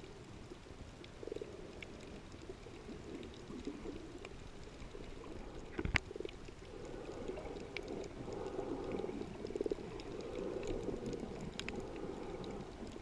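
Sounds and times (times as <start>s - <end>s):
faint clicks: 0.0s - 13.0s
underwater rush of moving water: 0.0s - 13.0s.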